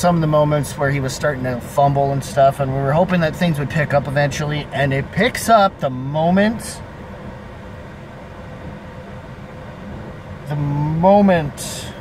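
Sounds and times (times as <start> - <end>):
car cabin rumble and hum: 0.0 - 12.0.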